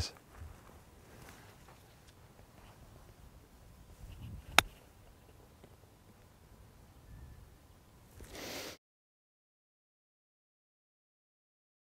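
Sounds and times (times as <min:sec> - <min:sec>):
golf club striking ball: 0:04.5 - 0:04.8.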